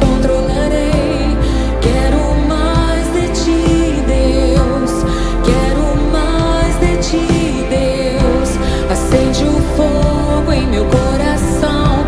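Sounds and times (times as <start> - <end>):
band playing sustained chords: 0.0 - 12.0
person singing melody: 0.0 - 12.0
steady bass: 0.0 - 12.0.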